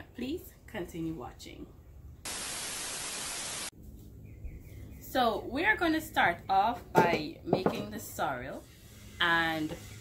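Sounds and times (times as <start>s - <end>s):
static white noise burst: 2.2s - 3.7s.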